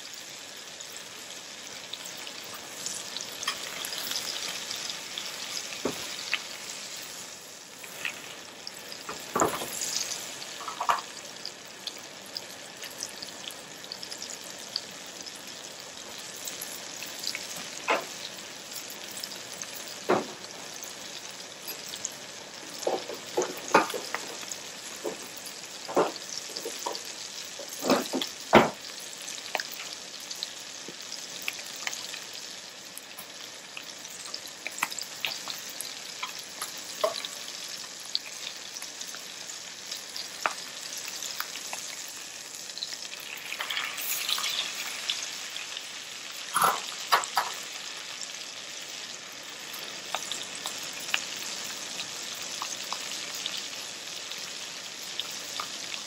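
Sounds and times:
meat sizzling in frying pan: 0.0s - 56.0s.

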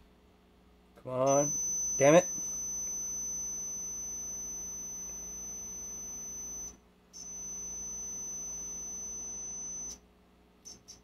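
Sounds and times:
multimeter continuity beep: 1.2s - 10.0s, 10.7s - 11.0s.

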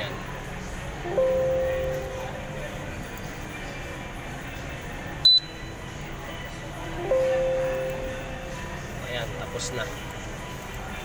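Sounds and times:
low background noise: 0.0s - 11.0s
high-pitched electronic beep: 1.0s - 3.7s, 4.3s - 8.7s.

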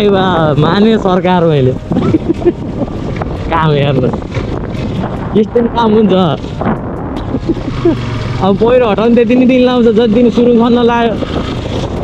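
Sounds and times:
wind on microphone: 0.0s - 12.0s.

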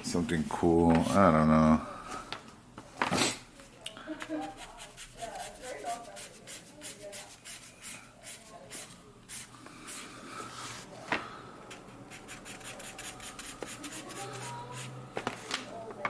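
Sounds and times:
marker scratching on paper bag: 4.4s - 10.0s, 12.1s - 15.0s.

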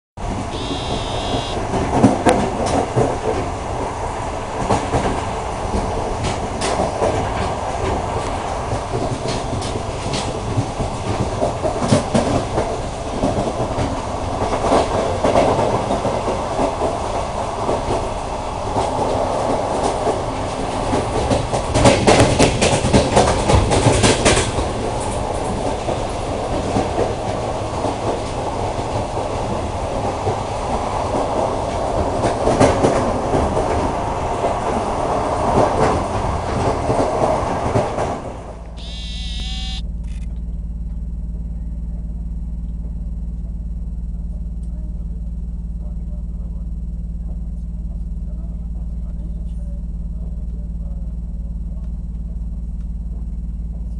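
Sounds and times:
train rumbling along track: 0.2s - 39.8s
wheels clicking over rails: 18.7s - 38.3s.

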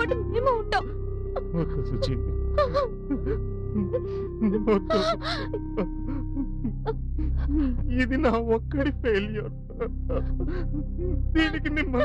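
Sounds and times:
background music held notes: 0.0s - 12.0s
woman sobbing: 0.0s - 12.0s.

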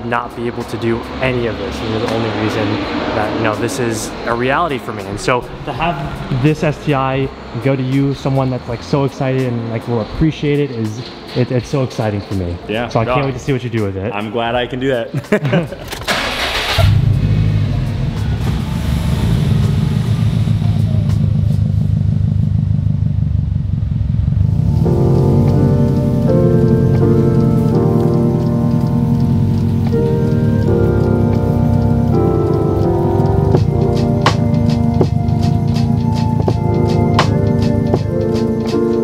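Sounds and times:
car engine starting and idling: 0.0s - 13.6s, 15.7s - 39.0s
music: 0.0s - 22.3s, 24.4s - 39.0s.

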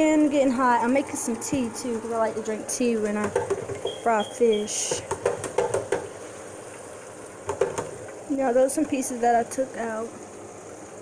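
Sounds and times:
oil sizzling in deep fryer: 0.0s - 11.0s.

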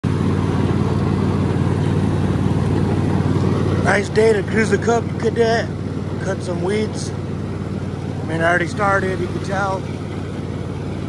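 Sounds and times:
riding mower engine running: 0.0s - 11.0s
man's voice: 3.8s - 7.2s, 8.3s - 9.8s.

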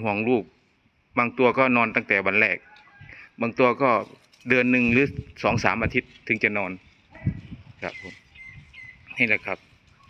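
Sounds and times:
man speaking: 0.0s - 0.5s, 1.2s - 2.6s, 3.4s - 6.9s, 7.8s - 8.2s, 9.1s - 9.7s
high thin bird calls: 7.1s - 10.0s.

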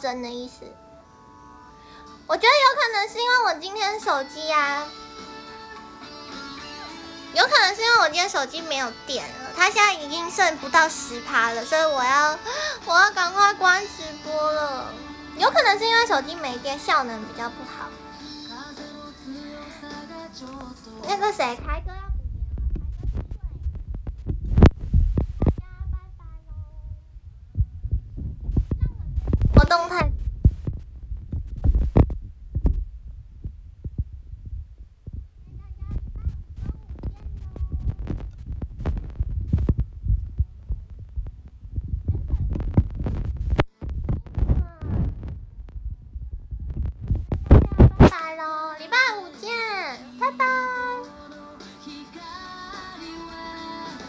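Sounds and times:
music: 0.0s - 27.0s, 35.7s - 45.4s, 46.4s - 54.0s.

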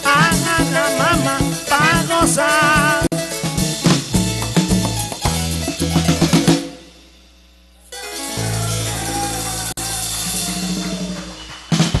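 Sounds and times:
drum and cymbal hits: 0.0s - 12.0s
live band holding a chord: 0.0s - 12.0s.

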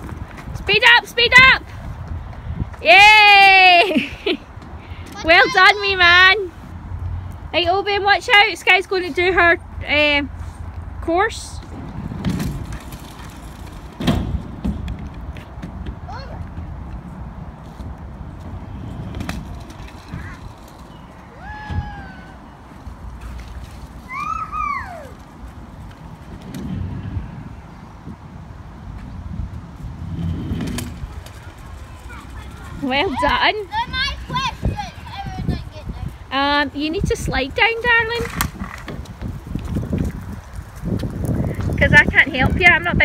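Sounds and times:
scooter rolling on concrete: 0.0s - 43.0s
scooter wheels knocking on bumps: 11.6s - 17.0s, 30.0s - 36.0s
child calling out: 21.4s - 22.4s, 24.1s - 25.2s.

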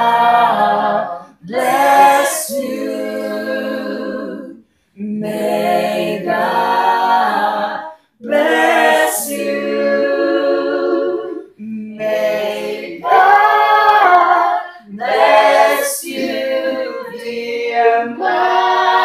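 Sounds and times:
group singing a cappella: 0.0s - 19.0s.

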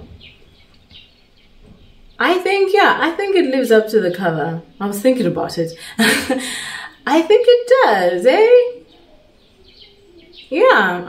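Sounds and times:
faint high chirps: 8.8s - 10.6s.

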